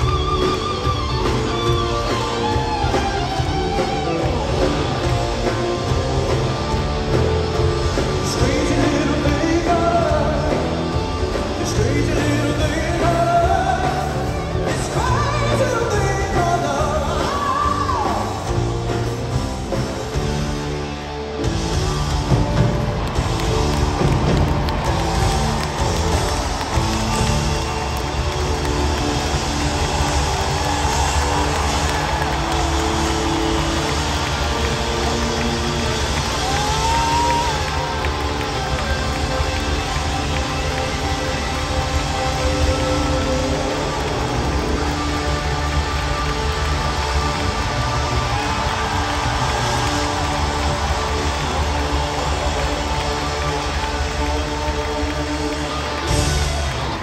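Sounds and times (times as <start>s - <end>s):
bass and drums: 0.0s - 57.0s.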